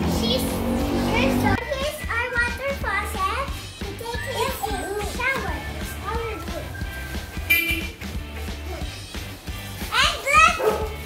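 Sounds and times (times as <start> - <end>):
children chattering: 0.0 - 7.4, 8.5 - 11.0
background music with bass: 0.0 - 11.0.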